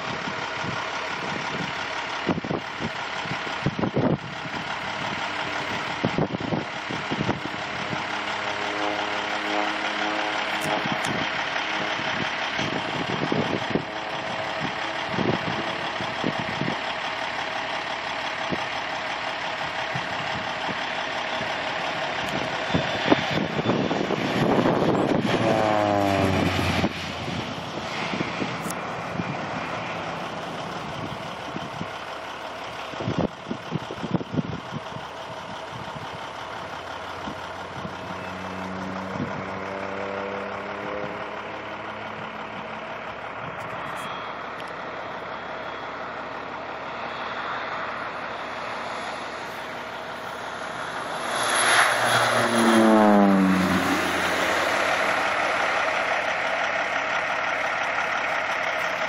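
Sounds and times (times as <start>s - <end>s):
turboprop plane engine and propeller: 0.0s - 59.0s.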